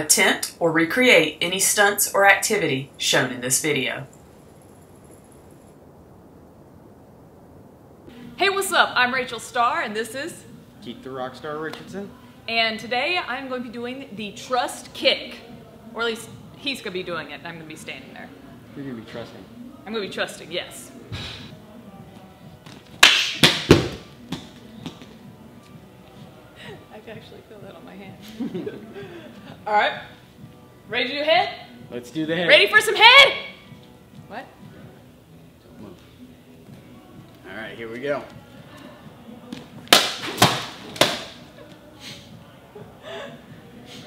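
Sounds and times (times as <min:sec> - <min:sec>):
low rumble with light hiss: 0:00.6 - 0:21.1
kick hitting plastic bottle: 0:23.0 - 0:25.0, 0:39.9 - 0:41.4.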